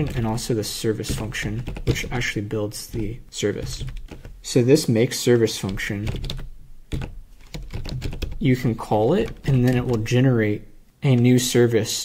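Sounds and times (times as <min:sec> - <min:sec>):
computer keyboard typing: 0:00.0 - 0:04.5, 0:05.6 - 0:10.2.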